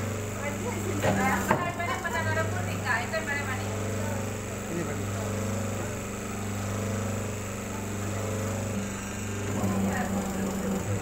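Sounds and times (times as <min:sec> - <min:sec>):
machine motor and pump humming: 0:00.0 - 0:11.0.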